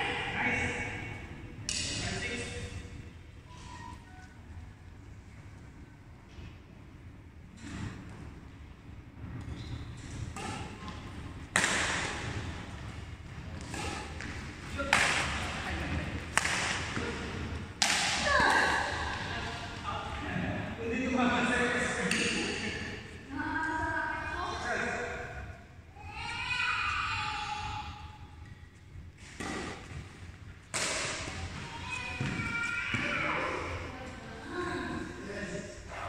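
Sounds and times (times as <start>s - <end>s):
racket hitting shuttlecock: 10.3s - 12.6s, 13.6s - 15.6s, 16.2s - 18.9s, 29.2s - 30.1s, 30.7s - 33.1s.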